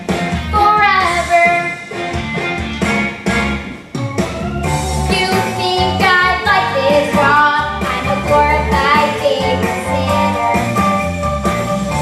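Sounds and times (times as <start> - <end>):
recorded backing track: 0.0 - 12.0
girl singing into microphone: 0.6 - 1.8, 5.1 - 10.4.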